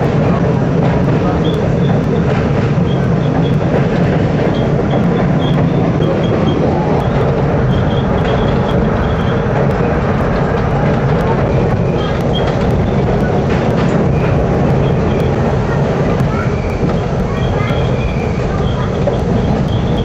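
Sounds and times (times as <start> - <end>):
train wheels rumbling on rails: 0.0 - 20.0.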